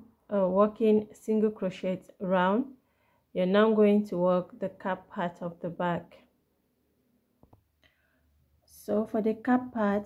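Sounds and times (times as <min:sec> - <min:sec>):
woman speaking: 0:00.3 - 0:02.8, 0:03.4 - 0:06.3, 0:08.7 - 0:10.0.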